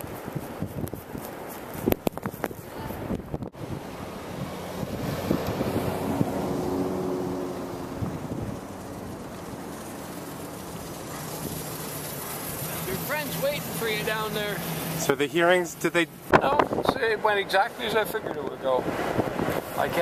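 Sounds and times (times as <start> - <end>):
wind on microphone: 0.0 - 9.6, 16.2 - 17.2, 17.9 - 20.0.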